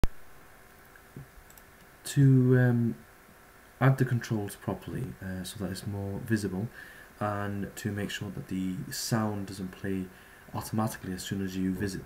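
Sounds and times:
computer mouse click: 1.4s - 1.9s.

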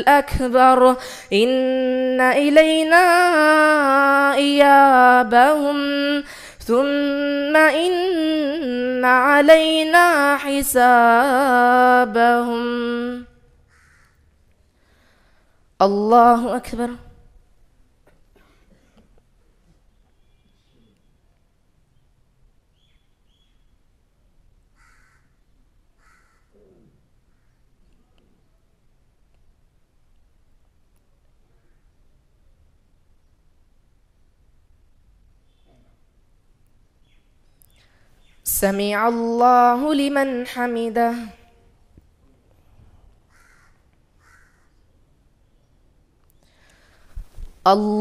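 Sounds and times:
faint bird calls: 13.7s - 14.3s, 22.7s - 23.8s, 24.8s - 27.9s, 35.4s - 36.0s, 43.3s - 45.8s
harsh bird calls: 22.7s - 23.7s.

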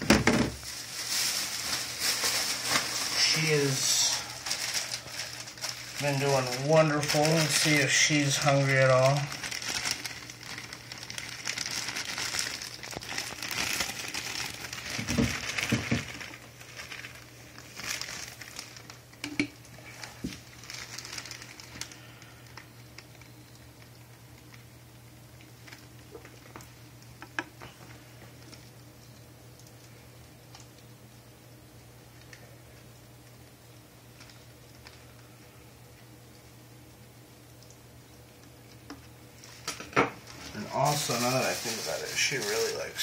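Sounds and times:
crinkling and rustling handling: 0.0s - 24.7s, 25.3s - 30.8s, 32.1s - 36.1s, 38.4s - 43.0s
low steady hum: 0.0s - 43.0s.

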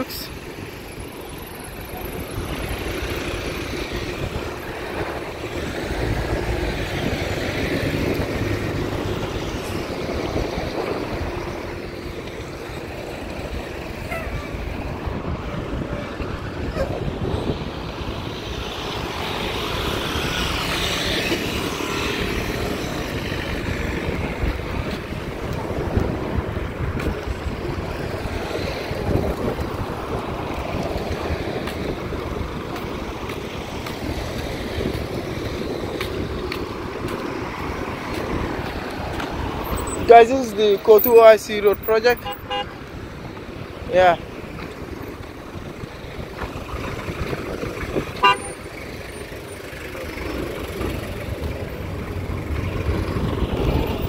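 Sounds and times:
vehicles passing by: 0.0s - 54.0s.

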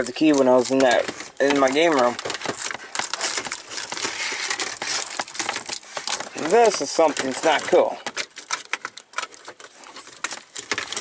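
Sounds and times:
plastic wrap crinkling: 0.0s - 11.0s.

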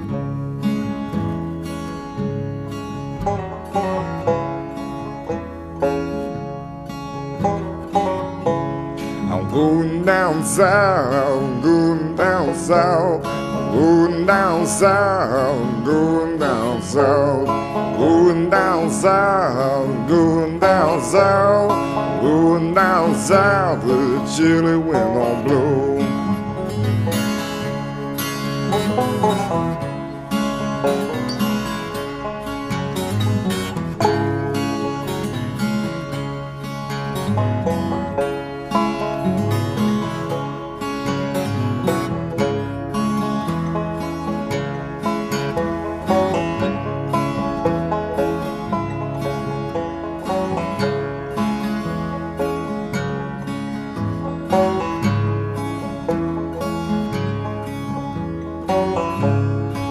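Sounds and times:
plucked guitar riff: 0.0s - 59.9s.

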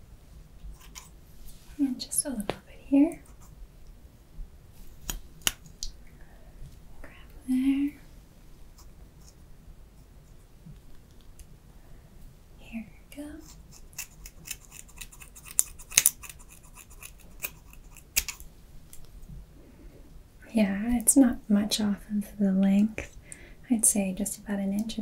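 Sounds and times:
scissors snipping hair: 13.4s - 18.4s.

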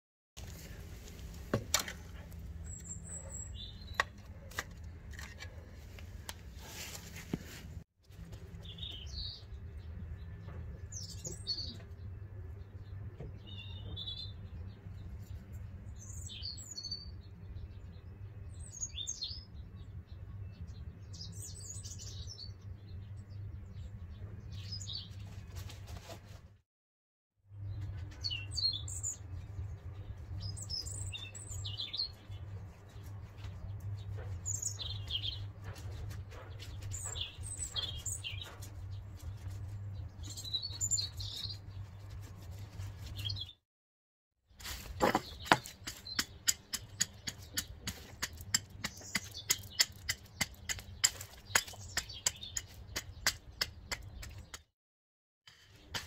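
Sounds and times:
small birds chirping: 2.0s - 7.1s, 8.3s - 25.7s, 27.6s - 43.6s, 44.8s - 54.7s.

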